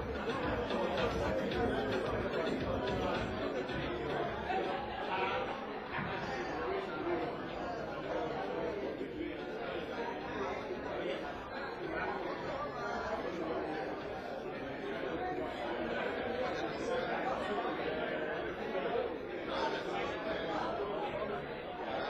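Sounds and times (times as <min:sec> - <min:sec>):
murmur of crowd chatter: 0:00.0 - 0:22.0.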